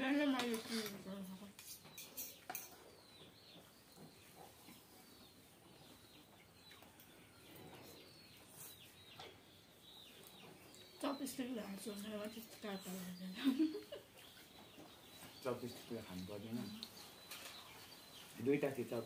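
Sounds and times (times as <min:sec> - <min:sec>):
faint bird chirps: 0:00.5 - 0:19.0
forks clinking against plates: 0:01.6 - 0:02.8.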